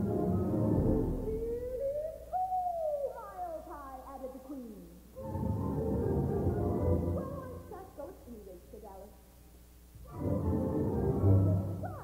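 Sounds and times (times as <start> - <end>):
orchestral sliding pitches: 10.0 - 12.0.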